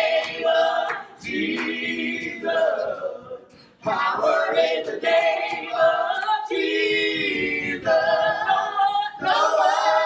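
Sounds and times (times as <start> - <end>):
group singing a cappella: 0.0 - 10.0.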